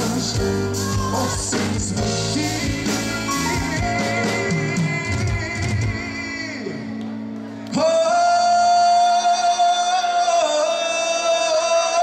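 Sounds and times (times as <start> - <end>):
keyboards and drums: 0.0 - 8.0.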